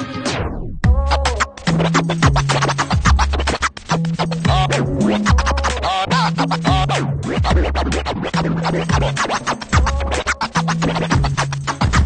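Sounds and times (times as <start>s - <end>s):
dj scratching: 0.0s - 12.0s
electronic track with heavy bass: 0.0s - 12.0s.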